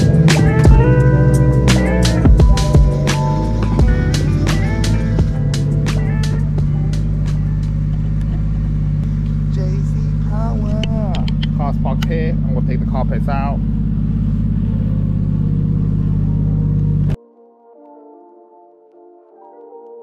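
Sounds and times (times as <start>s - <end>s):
car engine idling: 0.0s - 17.2s
voices talking: 9.1s - 13.7s.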